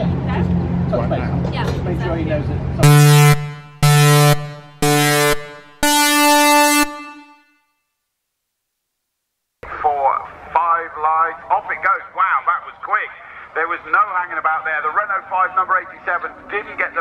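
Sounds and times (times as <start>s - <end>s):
electronic countdown beeps: 2.8s - 7.4s.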